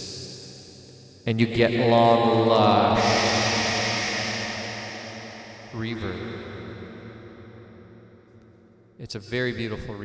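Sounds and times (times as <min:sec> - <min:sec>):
man's voice with long reverb: 0:01.3 - 0:04.3, 0:05.6 - 0:06.4, 0:09.0 - 0:10.0.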